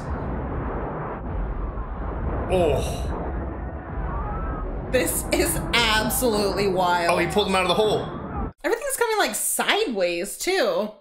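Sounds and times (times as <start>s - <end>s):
rumble of explosions and debris: 0.0s - 8.6s.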